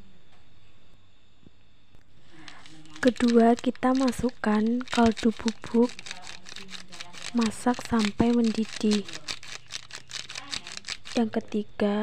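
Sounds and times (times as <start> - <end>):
plastic sachet rustling: 2.2 - 11.4.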